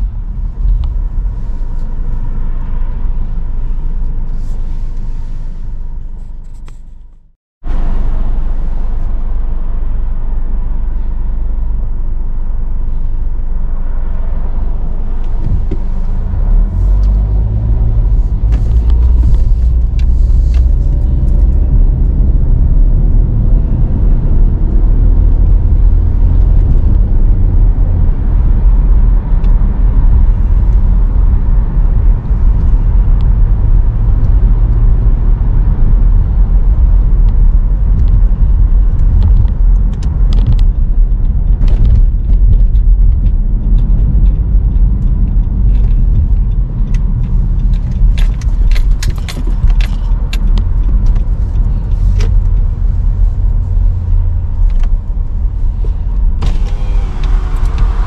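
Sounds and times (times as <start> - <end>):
car engine and road noise: 0.0 - 58.0.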